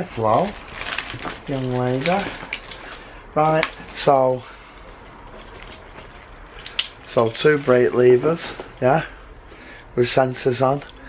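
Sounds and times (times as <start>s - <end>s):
faint handling noise: 0.0s - 9.0s.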